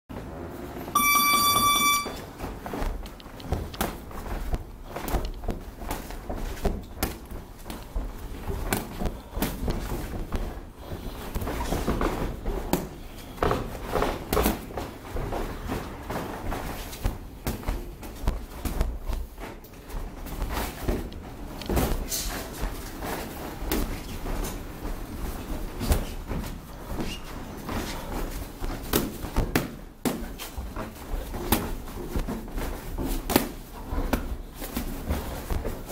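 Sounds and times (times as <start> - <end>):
high electronic timer beep: 0.9 - 2.2
boxing gloves slapping and thudding: 2.4 - 35.9.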